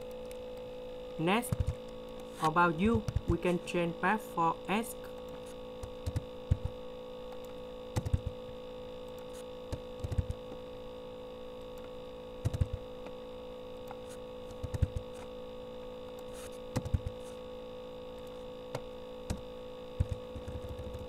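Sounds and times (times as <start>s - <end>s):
electrical hum: 0.0s - 21.0s
mouse and keyboard clicks: 16.7s - 17.1s.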